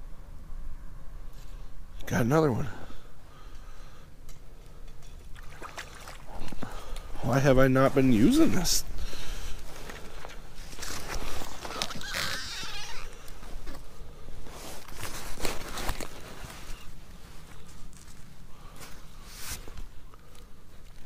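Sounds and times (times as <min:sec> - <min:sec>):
gloves and clothing rustling: 0:06.2 - 0:21.0.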